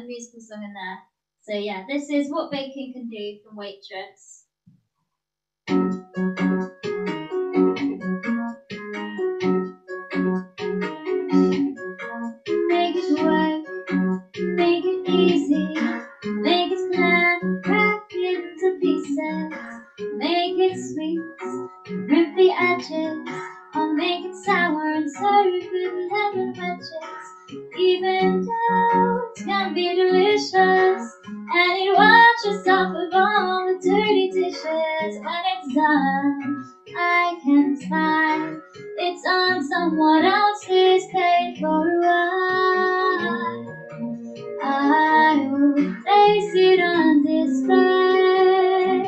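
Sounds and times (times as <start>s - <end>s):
piano accompaniment: 5.7s - 49.0s
girl singing into microphone: 12.6s - 13.7s, 14.6s - 21.5s, 22.1s - 43.7s, 44.6s - 49.0s.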